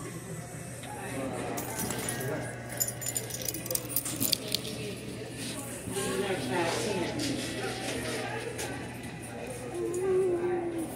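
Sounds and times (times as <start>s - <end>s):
customers chattering: 0.0s - 10.9s
metallic clinks and jangles: 1.6s - 4.6s.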